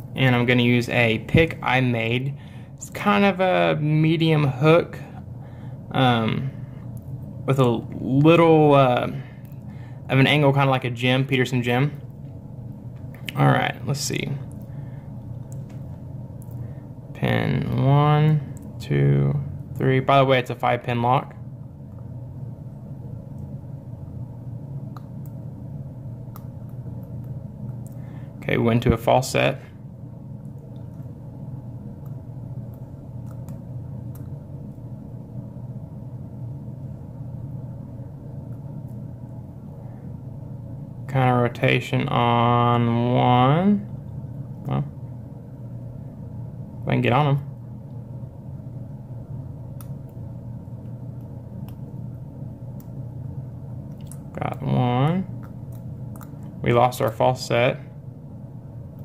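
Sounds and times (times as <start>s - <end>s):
steady low hum: 0.0s - 59.0s.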